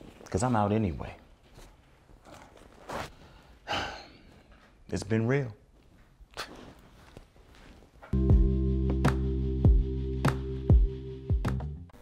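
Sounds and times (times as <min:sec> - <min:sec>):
man sighing: 0:03.6 - 0:04.3
man speaking: 0:04.9 - 0:05.6.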